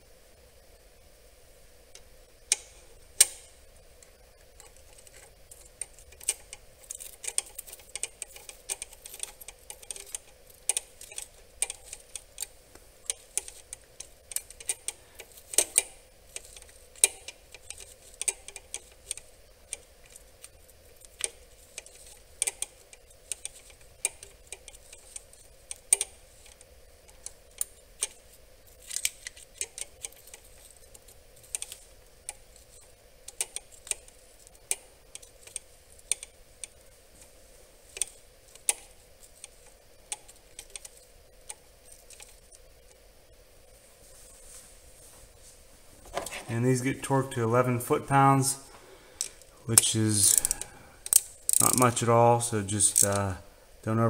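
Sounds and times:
socket ratchet clicking: 2.0s - 3.6s, 4.4s - 42.7s, 49.2s - 52.0s, 52.8s - 53.4s.

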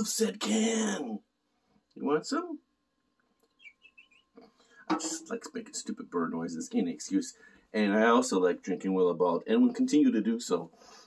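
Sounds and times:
man making bird chirps: 3.5s - 4.3s.

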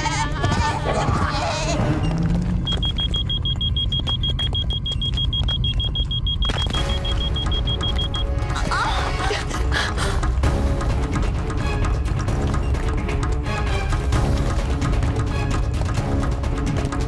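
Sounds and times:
rapid high-pitched beeping tone: 2.0s - 8.4s.

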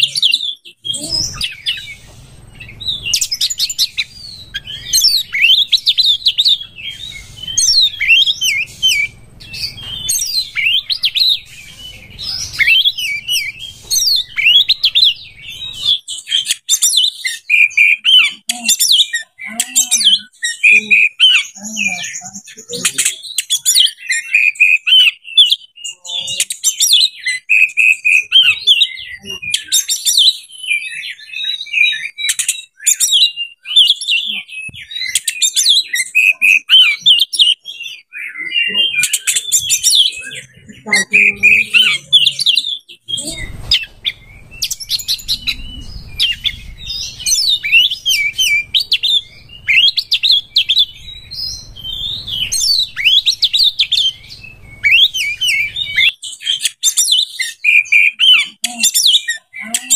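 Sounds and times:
bird singing: 0.0s - 59.9s.

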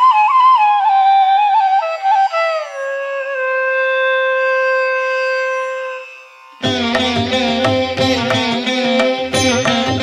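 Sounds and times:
bamboo flute long note: 0.0s - 8.0s.

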